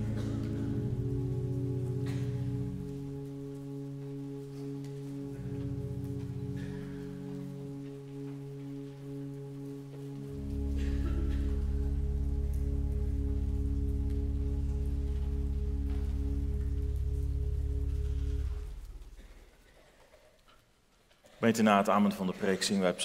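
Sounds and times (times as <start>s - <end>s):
church organ chords: 0.0s - 19.6s.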